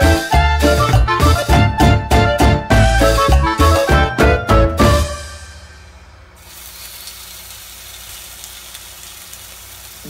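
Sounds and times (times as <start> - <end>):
chicken sizzling in a frying pan: 6.4 - 10.0.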